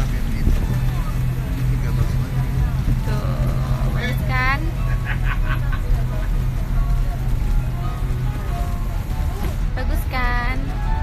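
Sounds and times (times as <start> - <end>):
vehicle rumble from inside cabin: 0.0 - 11.0.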